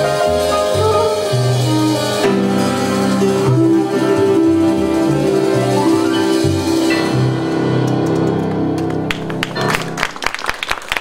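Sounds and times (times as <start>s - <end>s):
audience clapping: 7.8s - 11.0s.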